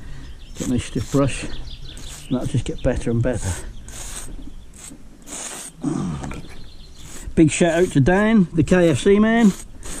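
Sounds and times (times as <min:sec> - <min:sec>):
stick scraping mortar joint: 0:00.5 - 0:10.0
person grunting: 0:05.8 - 0:06.4.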